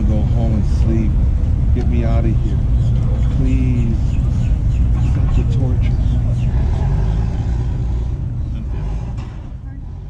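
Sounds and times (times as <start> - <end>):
engine idling: 0.0 - 10.0
people's voices: 0.0 - 10.0.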